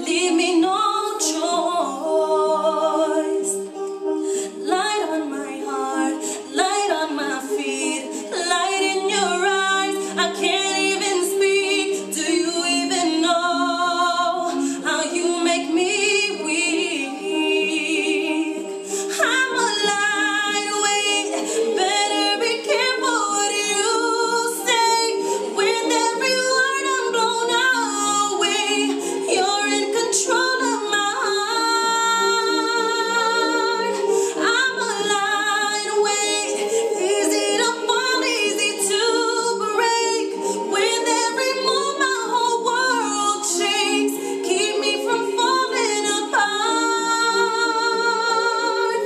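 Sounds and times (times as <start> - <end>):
sustained backing music: 0.0 - 49.0
woman singing pop ballad: 0.0 - 49.0.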